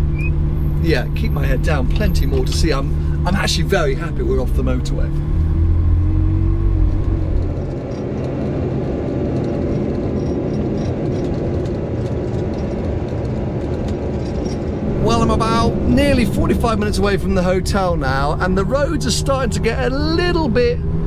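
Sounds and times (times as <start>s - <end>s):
car engine from inside cabin: 0.0s - 9.1s, 14.8s - 21.0s
engine and road rumble: 0.0s - 21.0s.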